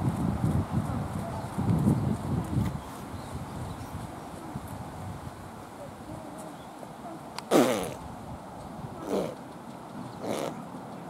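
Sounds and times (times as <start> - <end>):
horse snorting: 7.5 - 8.0, 9.0 - 9.4, 10.2 - 10.6.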